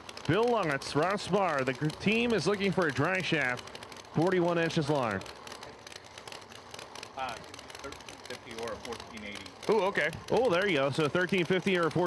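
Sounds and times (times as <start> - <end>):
small clicks: 0.0 - 12.0.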